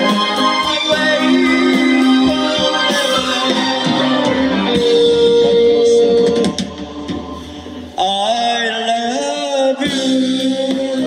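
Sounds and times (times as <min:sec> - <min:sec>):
live rock band playing: 0:00.0 - 0:11.0.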